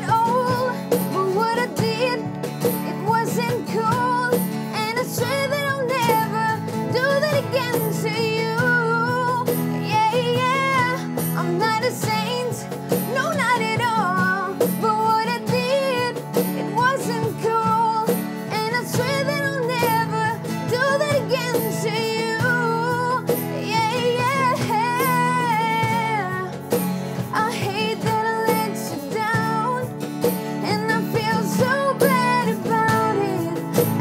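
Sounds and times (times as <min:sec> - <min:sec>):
acoustic guitars strummed: 0:00.0 - 0:34.0
percussion beat: 0:00.0 - 0:34.0
woman singing: 0:00.0 - 0:34.0.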